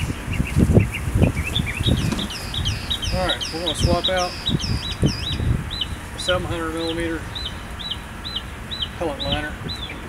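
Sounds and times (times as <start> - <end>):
bird calling: 0.0 - 10.0.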